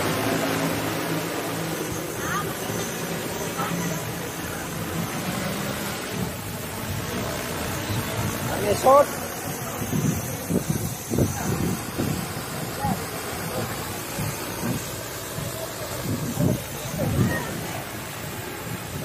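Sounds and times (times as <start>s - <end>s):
indistinct voices talking: 0.0s - 19.0s
wind rumbling on microphone: 0.0s - 19.0s.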